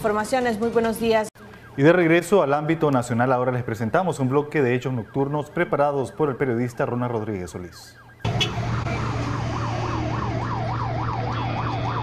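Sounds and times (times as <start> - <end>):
emergency siren yelping: 3.4 - 6.2, 7.6 - 12.0.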